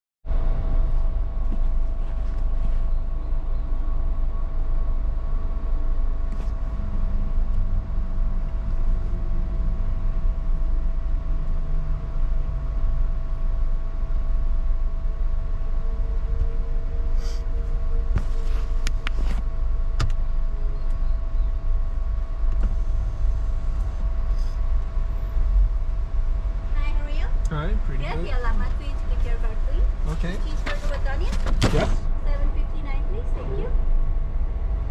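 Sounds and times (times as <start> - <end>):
car engine idling: 0.3 - 34.9
faint steady hum: 0.3 - 34.9.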